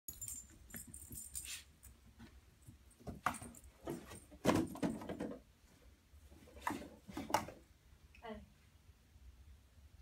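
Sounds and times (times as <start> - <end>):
dog collar jingling: 0.1 - 2.0.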